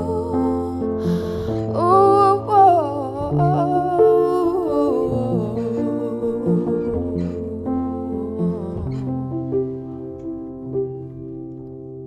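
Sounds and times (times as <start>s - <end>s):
woman singing: 0.0s - 9.6s
sustained piano notes: 0.0s - 12.0s.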